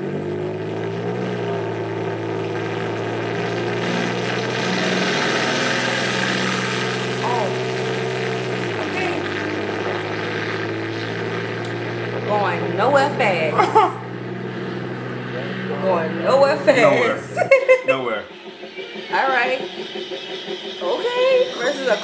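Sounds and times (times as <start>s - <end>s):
tank engine drone: 0.0s - 22.0s
tank tracks rushing: 0.0s - 22.0s.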